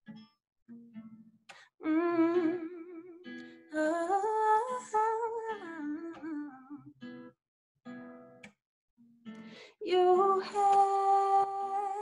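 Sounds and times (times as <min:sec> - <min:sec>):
acoustic guitar: 0:00.0 - 0:12.0
woman singing wordless vocal: 0:01.8 - 0:06.9, 0:09.7 - 0:12.0.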